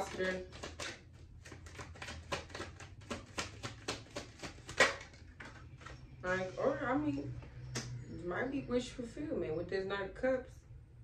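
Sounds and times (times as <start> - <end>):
cards being shuffled: 0.0 - 6.1.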